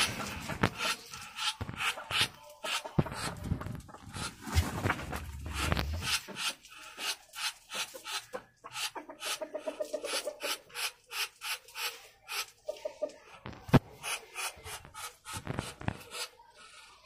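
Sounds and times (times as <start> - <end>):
scraping and rubbing: 0.0 - 8.3
poultry clucking: 0.0 - 17.0.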